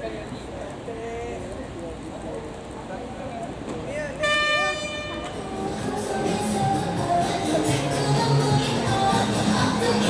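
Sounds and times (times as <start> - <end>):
murmur of voices: 0.0 - 10.0
loud steady horn-like beep: 4.2 - 5.3.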